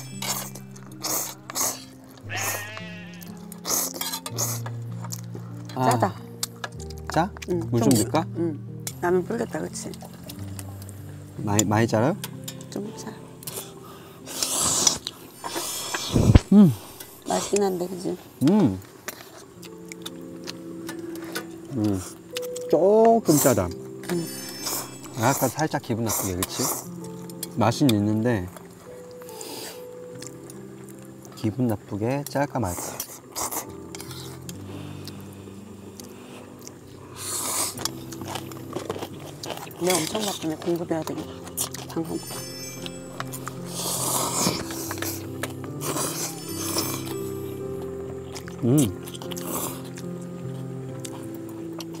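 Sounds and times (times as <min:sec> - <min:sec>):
background music: 0:00.0 - 0:52.0
faint steady held chord: 0:00.0 - 0:52.0.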